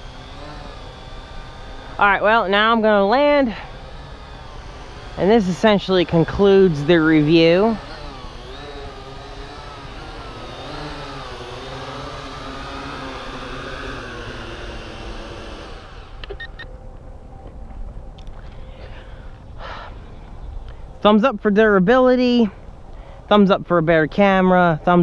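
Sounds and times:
drone motors whirring: 0.0 - 21.0.

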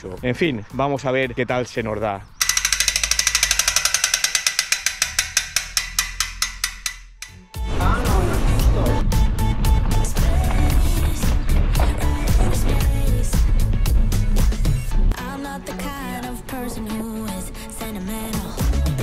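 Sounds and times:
bicycle freewheel ticking: 2.4 - 7.5.

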